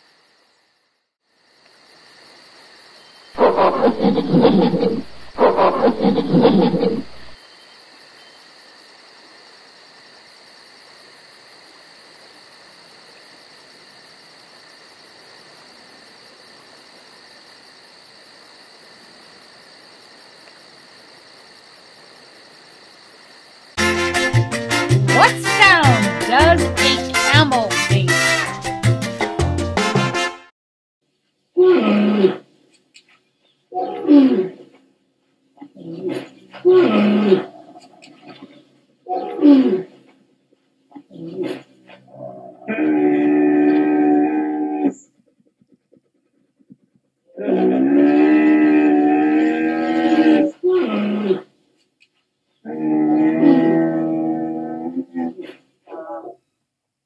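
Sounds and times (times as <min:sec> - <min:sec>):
camel calling: 0:03.4 - 0:07.4
gorilla low vocalization: 0:03.4 - 0:07.4
faint steady hiss: 0:07.3 - 0:23.8.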